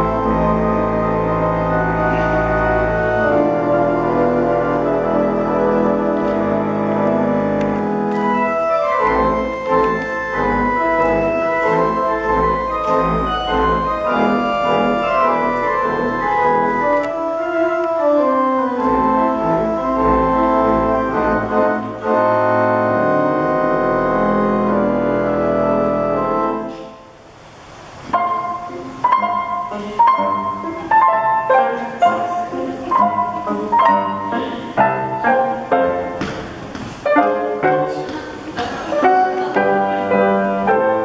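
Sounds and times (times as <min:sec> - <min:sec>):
organ playing lively music: 0:00.0 - 0:27.0, 0:28.1 - 0:36.2, 0:37.0 - 0:41.0.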